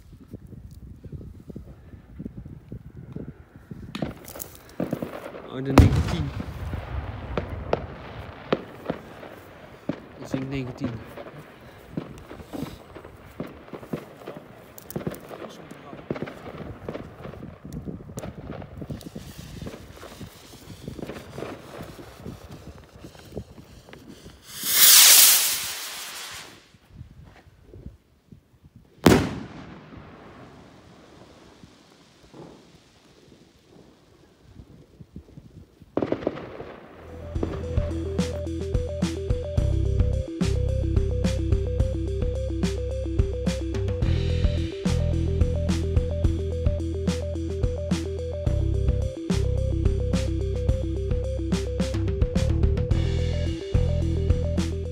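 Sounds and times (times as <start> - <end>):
firework bangs: 3.9 - 26.8, 29.0 - 34.6, 35.9 - 38.4
music with a beat: 37.2 - 54.9.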